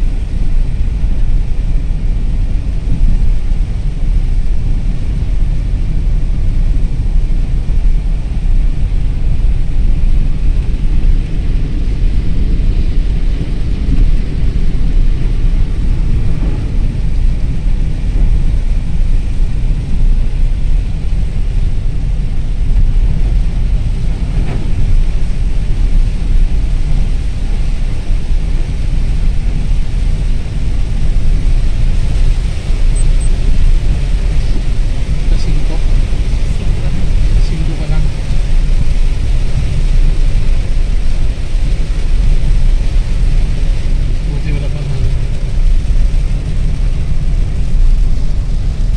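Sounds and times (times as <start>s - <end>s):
car tyre and road noise: 0.0s - 48.9s
rain on a car: 0.0s - 48.9s.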